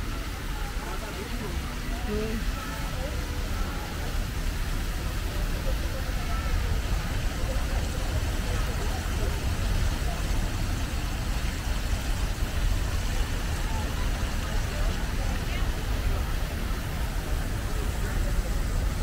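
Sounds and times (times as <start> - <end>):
fountain water splashing: 0.0 - 19.0
low rumble of traffic: 0.0 - 19.0
voices of passers-by: 0.0 - 19.0.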